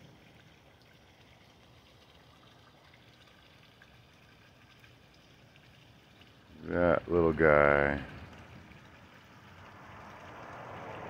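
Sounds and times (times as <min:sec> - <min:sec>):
faint water trickling: 0:00.0 - 0:11.0.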